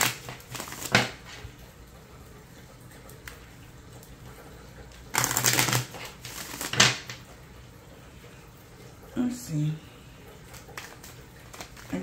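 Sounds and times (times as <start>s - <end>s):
cards being shuffled: 0.0s - 1.4s, 5.2s - 7.2s, 10.5s - 12.0s.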